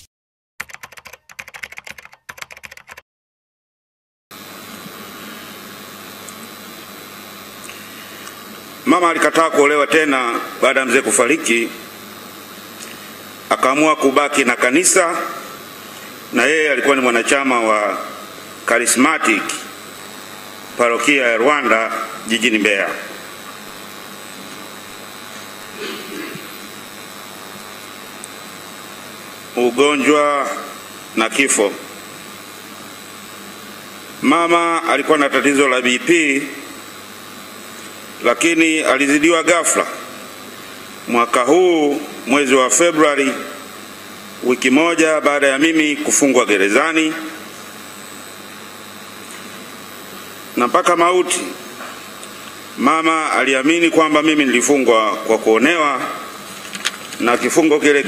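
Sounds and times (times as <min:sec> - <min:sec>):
rapid typing-like clicking: 0:00.6 - 0:03.0
room noise with high whine: 0:04.4 - 0:58.0.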